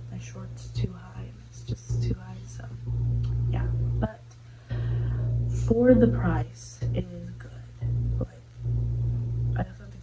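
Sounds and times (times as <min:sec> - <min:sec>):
woman speaking: 0:00.0 - 0:04.4, 0:05.2 - 0:08.5, 0:09.5 - 0:10.0
low hum: 0:00.0 - 0:10.0.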